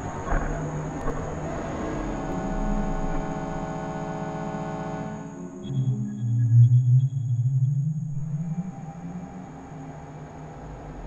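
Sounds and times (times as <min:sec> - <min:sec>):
low droning tone rising in pitch: 0:00.0 - 0:11.0
steady high whine: 0:00.0 - 0:11.0.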